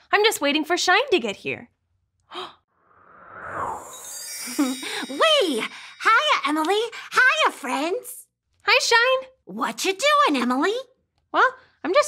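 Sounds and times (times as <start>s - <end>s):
whoosh with high shimmer: 3.0s - 6.1s.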